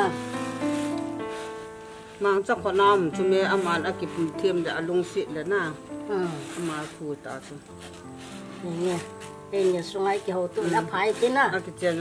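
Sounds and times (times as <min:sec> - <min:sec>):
background music with held notes: 0:00.0 - 0:12.0
woman talking: 0:02.2 - 0:07.6, 0:08.6 - 0:12.0.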